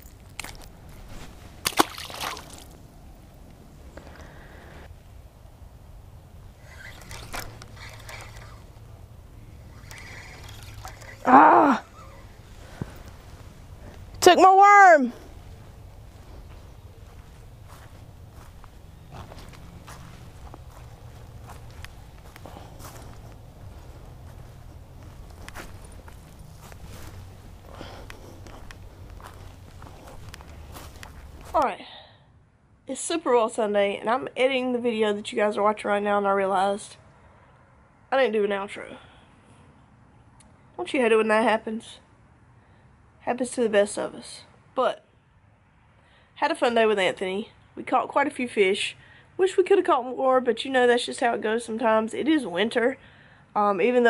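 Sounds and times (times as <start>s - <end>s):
fish splashing in water: 1.6s - 2.8s, 9.7s - 11.3s
fishing reel clicks: 6.6s - 8.7s, 9.7s - 11.3s
steady low rumble: 7.3s - 10.2s, 11.2s - 14.2s, 15.1s - 31.6s
footsteps on muddy dirt path: 10.5s - 14.2s, 15.1s - 31.7s.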